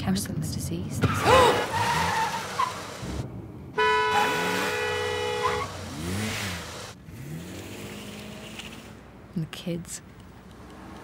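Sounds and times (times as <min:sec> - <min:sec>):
car engine: 0:00.6 - 0:11.0
car horn blast: 0:03.8 - 0:06.2.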